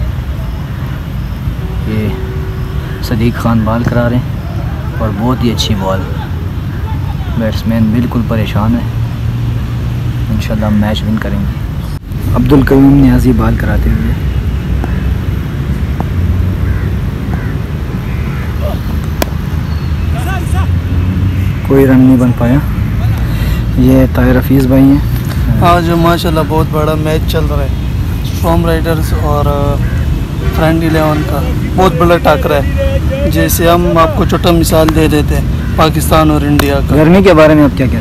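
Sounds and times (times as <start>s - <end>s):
faint distant calls: 0.0s - 38.0s
cricket bat striking ball: 18.9s - 19.4s
person speaking: 30.4s - 38.0s.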